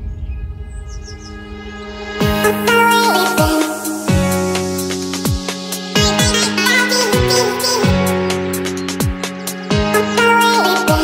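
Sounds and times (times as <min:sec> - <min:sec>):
high bird-like chirps: 0:00.0 - 0:02.1
sustained synth chords: 0:00.0 - 0:06.4.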